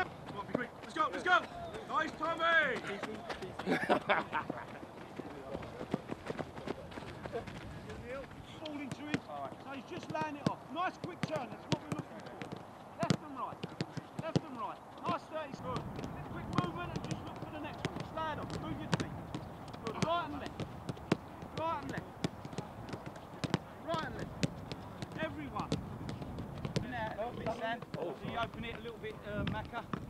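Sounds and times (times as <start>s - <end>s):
voices calling: 0.0s - 5.6s, 7.2s - 30.0s
boots kicking footballs: 5.5s - 30.0s.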